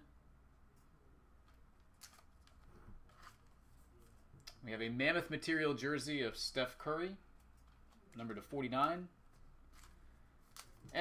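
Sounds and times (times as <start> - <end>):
card rustling: 1.4 - 4.3, 7.3 - 11.0.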